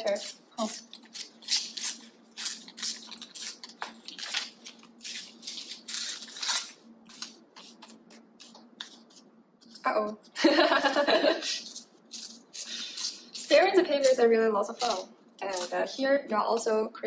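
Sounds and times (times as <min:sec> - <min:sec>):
magazine paper tearing: 0:00.0 - 0:09.0
faint steady hum: 0:00.0 - 0:17.0
paper rustling: 0:02.5 - 0:09.9.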